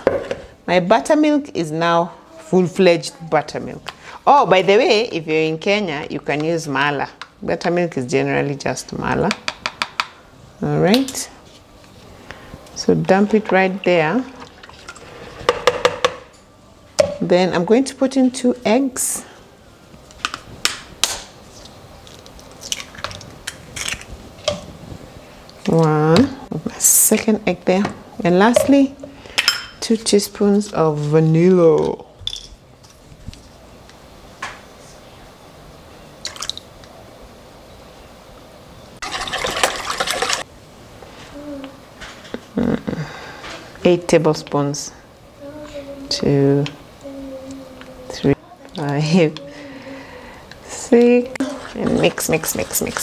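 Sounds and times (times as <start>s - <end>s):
whisk stirring in plastic bowl: 51.4s - 53.0s.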